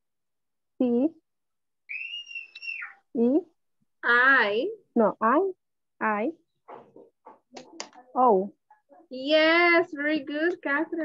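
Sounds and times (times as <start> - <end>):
high whistled tone: 1.9 - 3.0.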